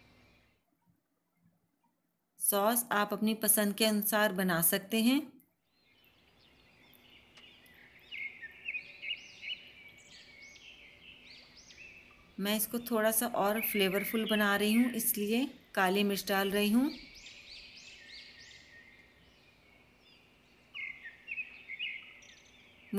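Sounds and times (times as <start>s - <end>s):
birds chirping: 5.6s - 22.9s.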